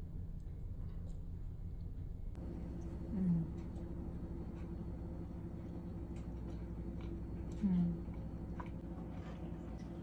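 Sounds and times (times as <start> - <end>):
low background hum: 0.0 - 10.0
clicky chewing: 2.7 - 10.0
woman humming: 3.0 - 3.8, 7.5 - 8.1.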